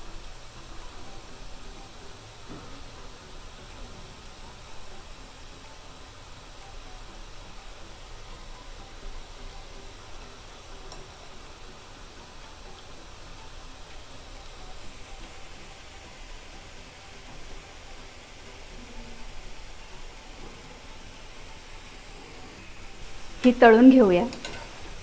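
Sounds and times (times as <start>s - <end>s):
batter frying in hot oil: 0.0s - 25.0s.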